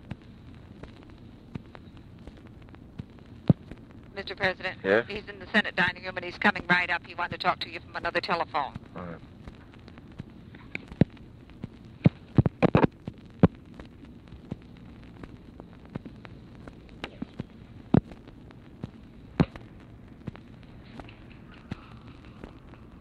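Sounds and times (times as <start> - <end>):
crackle clicks and pops: 0.0 - 23.0
recording hiss: 0.0 - 23.0.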